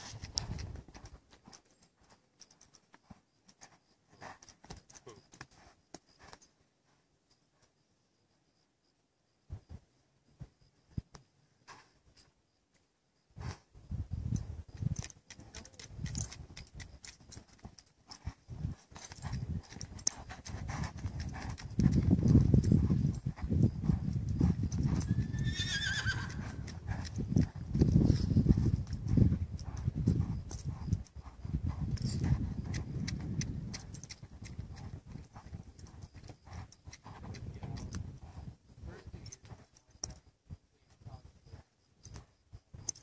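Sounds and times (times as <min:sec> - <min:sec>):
hooves thudding in sand: 0:00.0 - 0:07.8, 0:09.5 - 0:12.3, 0:13.3 - 0:43.0
horse whinnying: 0:25.0 - 0:26.6.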